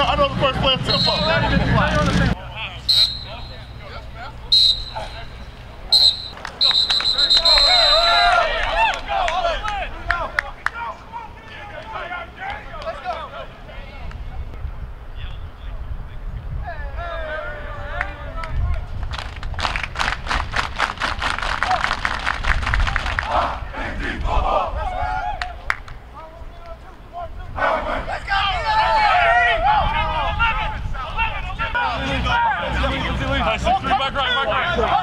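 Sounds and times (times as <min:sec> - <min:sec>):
players shouting together: 0:05.9 - 0:13.2
team clapping in unison: 0:06.3 - 0:10.8, 0:18.0 - 0:23.5, 0:25.4 - 0:26.0.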